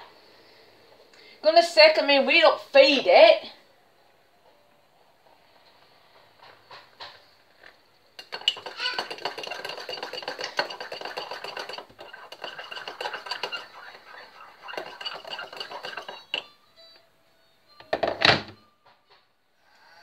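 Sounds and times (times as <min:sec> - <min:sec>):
spoon scraping metal pot: 0:08.2 - 0:16.5.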